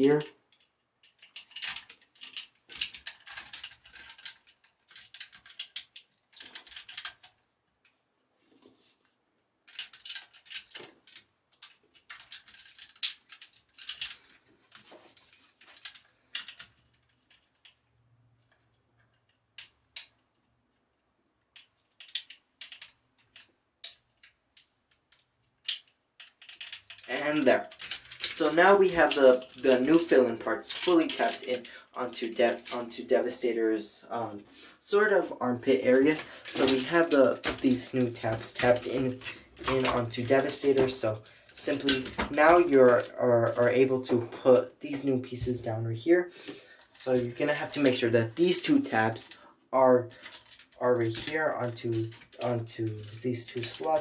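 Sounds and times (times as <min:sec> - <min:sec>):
hard plastic parts clicking: 0:00.0 - 0:08.0, 0:09.6 - 0:33.5, 0:34.4 - 0:54.0.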